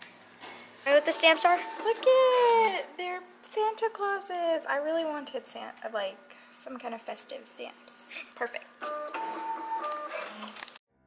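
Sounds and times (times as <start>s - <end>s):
printer-like machine whir: 1.1s - 2.1s, 8.9s - 10.5s.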